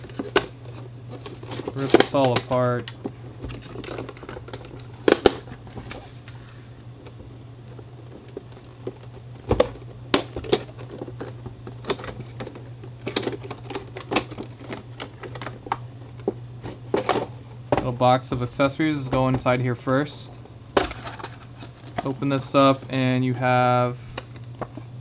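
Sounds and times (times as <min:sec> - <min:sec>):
packaging clicks and crinkles: 0:00.0 - 0:06.4, 0:07.0 - 0:17.3
steady low hum: 0:00.0 - 0:25.0.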